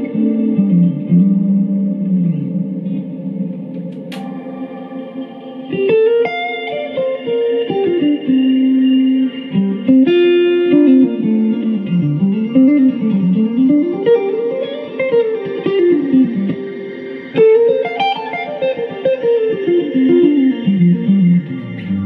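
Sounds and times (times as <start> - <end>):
electric guitar with delay and reverb: 0.0 - 22.0.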